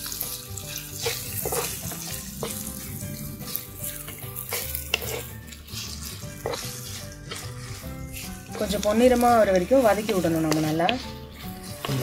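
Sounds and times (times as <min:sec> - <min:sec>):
onions sizzling in oil: 0:00.0 - 0:12.0
wooden spatula stirring: 0:00.0 - 0:12.0.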